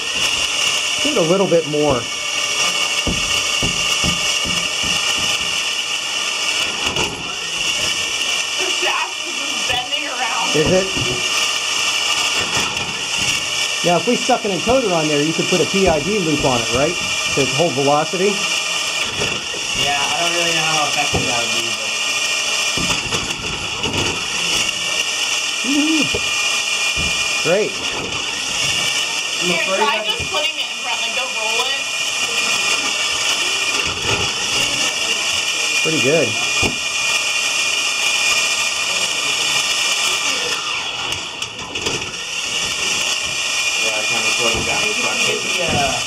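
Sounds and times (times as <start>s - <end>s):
electric motor whirring: 0.0s - 46.0s.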